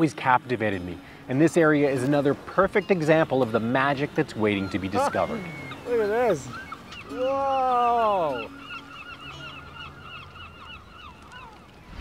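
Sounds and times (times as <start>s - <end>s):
flock of seabirds calling: 0.0s - 12.0s.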